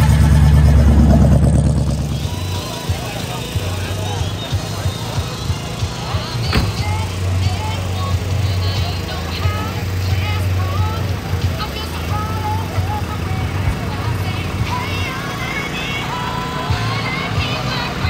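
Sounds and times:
low engine-like rumble: 0:00.0 - 0:18.0
music playing: 0:00.0 - 0:18.0
people talking: 0:00.0 - 0:18.0.

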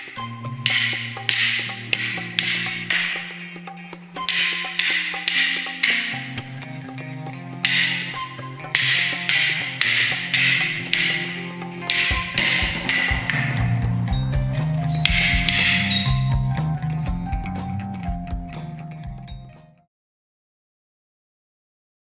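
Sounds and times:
sustained low notes: 0:00.1 - 0:19.6
heavy low beat: 0:08.9 - 0:19.5.

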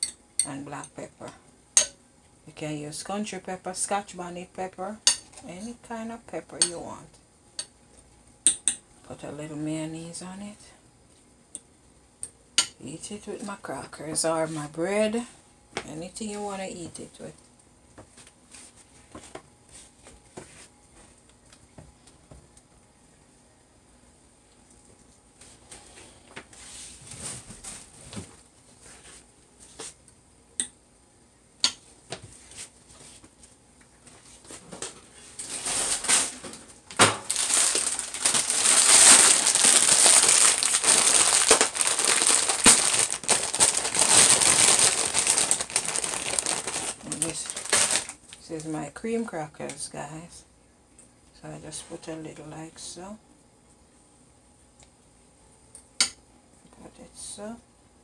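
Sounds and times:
plastic bag crinkling: 0:35.4 - 0:48.4.

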